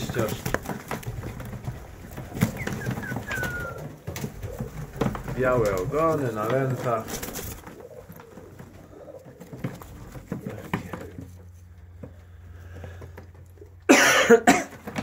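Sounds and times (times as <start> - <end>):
pigeons cooing: 0.0 - 14.0
pigeons shuffling: 0.0 - 15.0.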